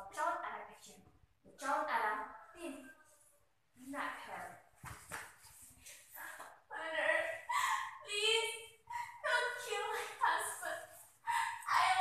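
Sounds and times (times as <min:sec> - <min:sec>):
girl making wordless vocal sounds: 0:06.7 - 0:12.0.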